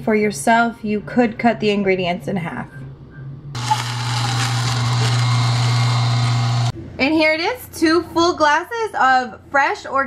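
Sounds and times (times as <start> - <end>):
electric juicer motor running: 3.6 - 6.8.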